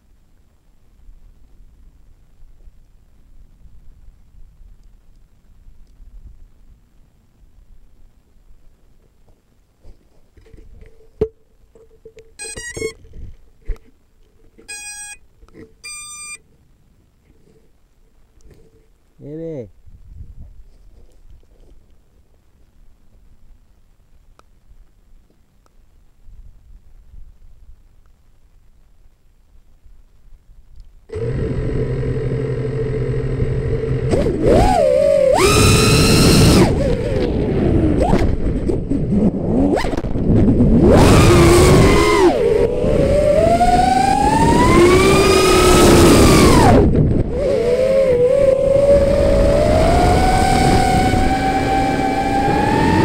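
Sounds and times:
electronic beeps: 12.4s - 13.0s, 14.7s - 15.2s, 15.8s - 16.4s
stepped electronic chime: 12.4s - 13.0s, 14.7s - 15.2s, 15.8s - 16.4s.

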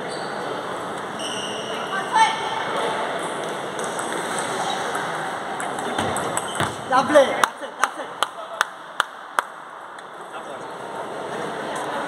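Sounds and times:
table tennis ball bouncing: 3.4s - 4.2s, 4.8s - 6.8s.

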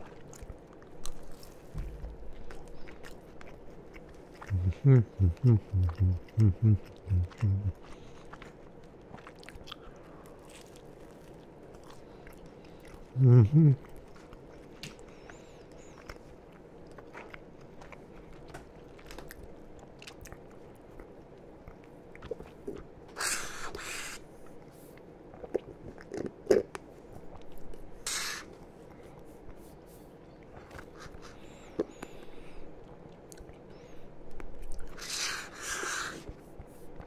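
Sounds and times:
person chewing food: 0.0s - 37.0s
person sipping through straw: 28.0s - 28.5s, 34.8s - 36.3s.

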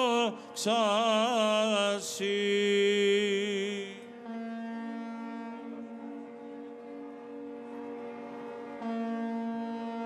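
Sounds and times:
ships' horns blasting: 4.2s - 10.0s.

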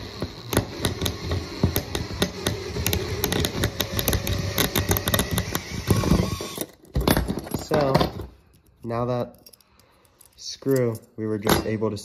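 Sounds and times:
drill grinding chatter: 0.0s - 6.6s.

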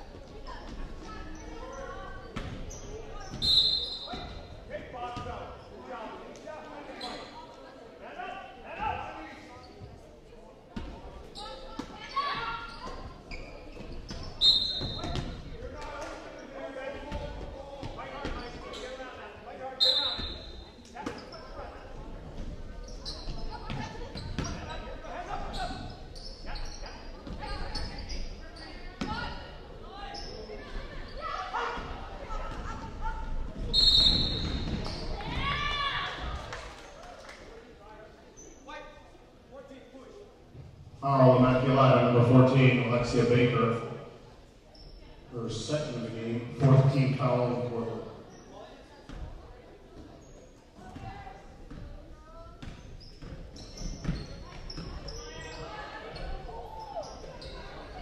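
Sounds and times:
players and spectators talking: 0.0s - 58.0s
referee's whistle: 3.4s - 4.3s, 14.4s - 15.0s, 19.8s - 20.4s, 33.7s - 34.6s.

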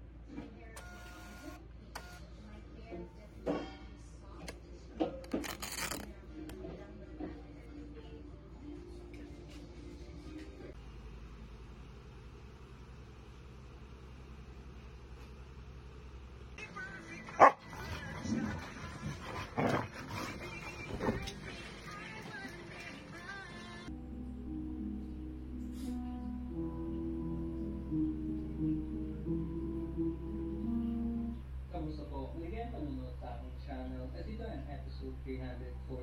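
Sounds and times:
printer motor whir: 0.8s - 2.3s
dogs barking: 17.3s - 21.4s
dogs growling: 17.3s - 21.9s.

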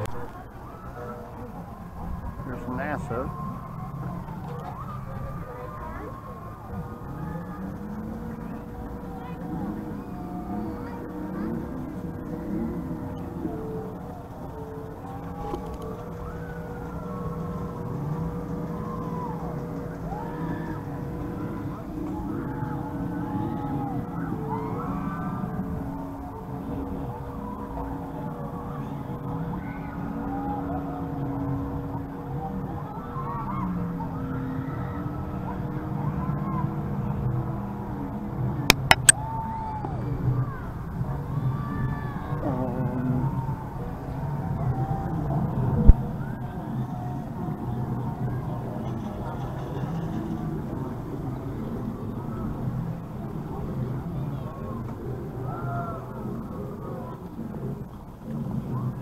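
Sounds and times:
distant voices: 0.0s - 31.0s
steady droning hum: 0.0s - 35.5s, 37.0s - 39.2s
sharp clicks: 38.7s - 39.2s.

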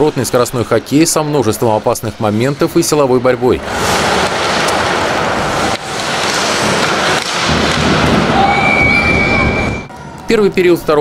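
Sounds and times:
crowd noise: 0.0s - 11.0s
skates and sticks on ice: 3.6s - 9.4s
referee's whistle blast: 8.4s - 9.9s.

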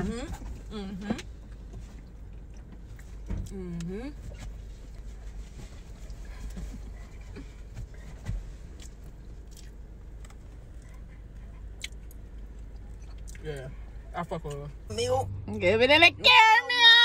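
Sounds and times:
steady low hum: 0.0s - 17.0s
person chewing: 8.7s - 11.0s.

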